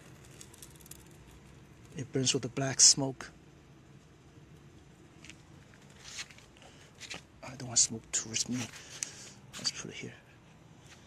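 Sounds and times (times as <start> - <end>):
burning bark crackling: 0.0 - 10.6.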